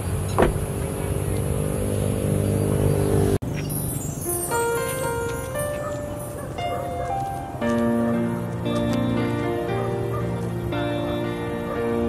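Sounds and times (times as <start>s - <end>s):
vehicle engine humming: 0.0s - 4.1s, 4.8s - 12.0s.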